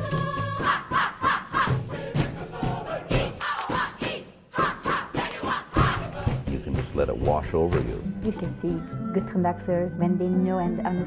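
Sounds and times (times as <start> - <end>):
choir singing and chanting: 0.0 - 11.0.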